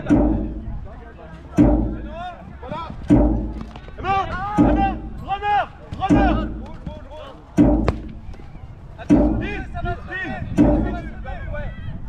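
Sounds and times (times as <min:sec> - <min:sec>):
drum beat: 0:00.0 - 0:00.8, 0:01.6 - 0:05.4, 0:06.0 - 0:07.0, 0:07.6 - 0:08.4, 0:09.1 - 0:09.8, 0:10.6 - 0:11.0
sharp knock: 0:00.0 - 0:00.8, 0:01.6 - 0:02.3, 0:03.1 - 0:03.8, 0:04.5 - 0:05.2, 0:06.0 - 0:06.9, 0:07.6 - 0:08.4, 0:09.1 - 0:09.7, 0:10.5 - 0:11.0.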